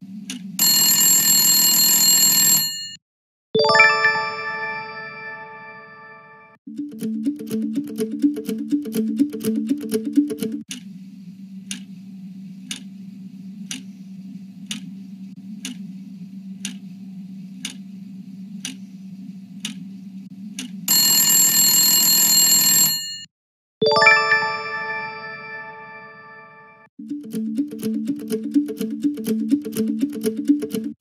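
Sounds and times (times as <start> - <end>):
timer ticking: 6.7 - 10.8, 27.0 - 31.0.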